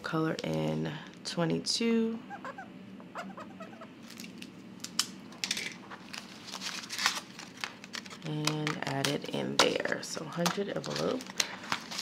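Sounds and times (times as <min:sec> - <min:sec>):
banknotes and plastic envelopes rustling: 0:04.0 - 0:09.4, 0:10.0 - 0:12.0.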